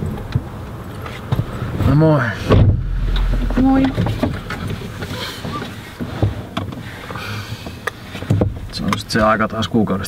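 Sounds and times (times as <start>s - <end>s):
car cabin low rumble: 0.0s - 7.2s
rustling of people moving: 0.4s - 9.5s.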